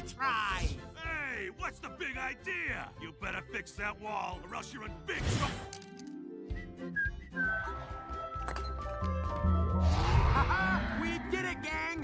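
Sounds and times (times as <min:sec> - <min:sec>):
background film score: 0:00.0 - 0:12.0
low rumble: 0:09.8 - 0:11.4.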